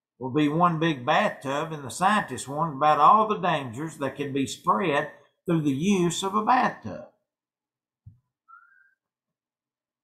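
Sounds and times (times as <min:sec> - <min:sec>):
faint rising whistle-like tone: 0:08.5 - 0:09.0.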